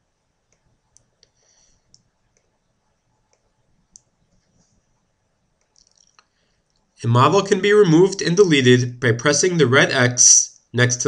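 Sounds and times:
computer mouse clicks: 0.5s - 2.6s, 3.2s - 4.6s.

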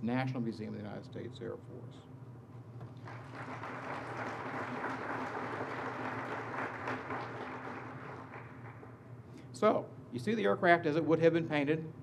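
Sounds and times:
audience applauding: 3.0s - 9.0s.

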